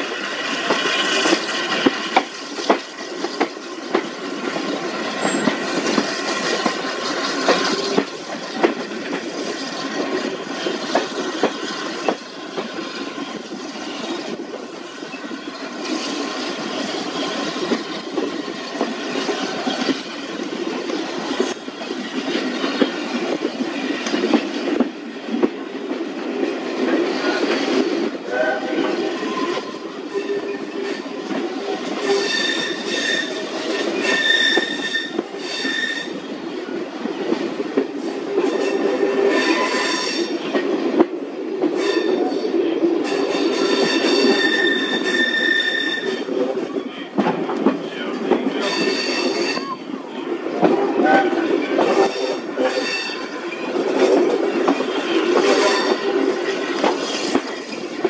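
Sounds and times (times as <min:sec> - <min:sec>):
train wheels rumbling on rail: 0:00.0 - 0:58.0
high wheel squeal: 0:32.0 - 0:36.2, 0:43.1 - 0:46.3, 0:48.6 - 0:49.8.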